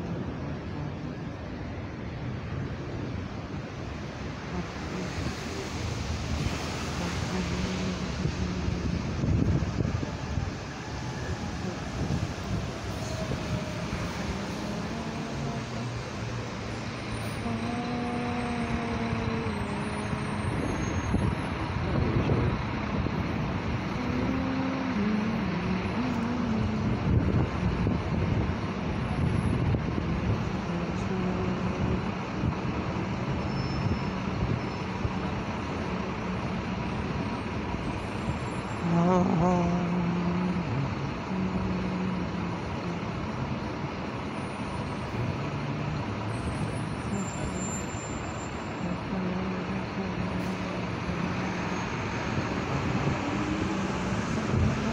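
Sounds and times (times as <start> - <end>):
city street traffic: 0.0 - 54.9.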